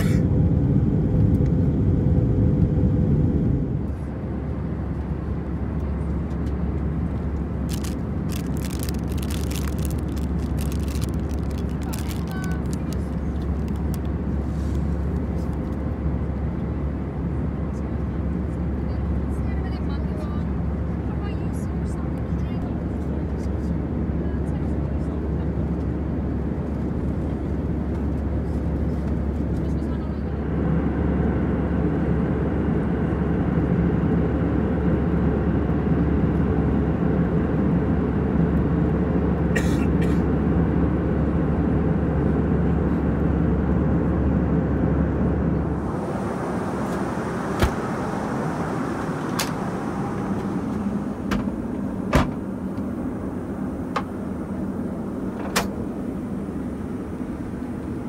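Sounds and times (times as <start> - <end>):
airliner cabin engine drone: 0.0 - 58.0.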